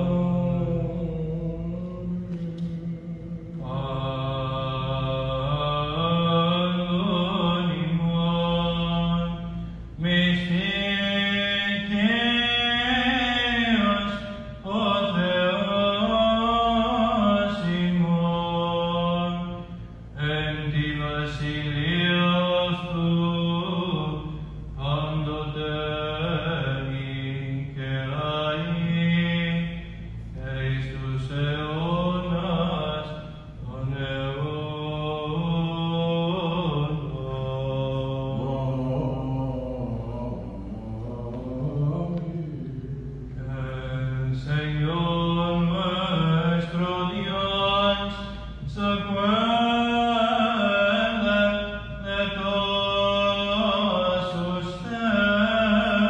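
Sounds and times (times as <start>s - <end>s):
man chanting unaccompanied: 0.0s - 56.0s.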